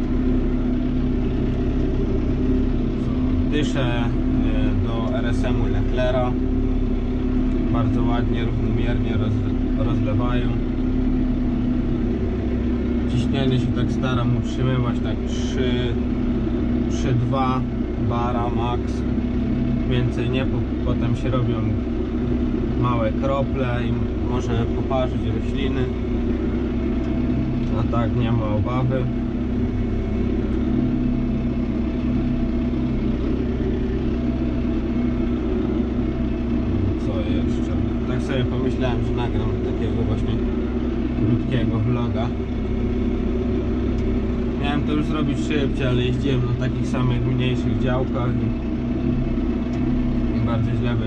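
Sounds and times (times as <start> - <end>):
tractor engine droning: 0.0 - 51.0.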